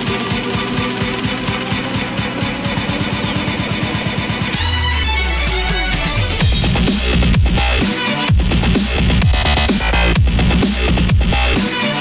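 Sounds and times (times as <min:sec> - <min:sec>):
electro dance music: 0:00.0 - 0:12.0.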